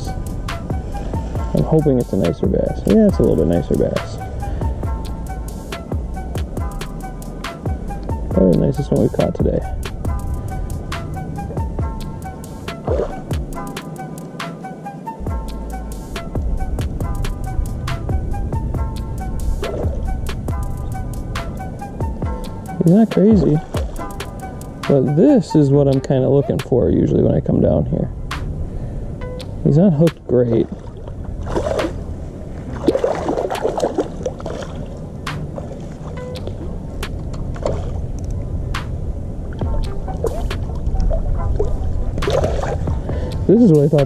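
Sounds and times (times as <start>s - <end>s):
electronic beat music: 0.0s - 26.7s, 29.2s - 30.2s, 36.2s - 37.2s, 38.7s - 44.0s
steady low noise: 0.0s - 44.0s
fish splashing in water: 32.6s - 35.0s.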